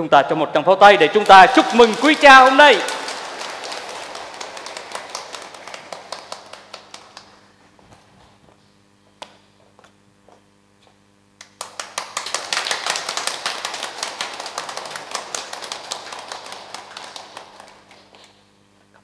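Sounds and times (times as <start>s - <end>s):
congregation applauding: 0.8s - 7.6s, 11.4s - 18.4s.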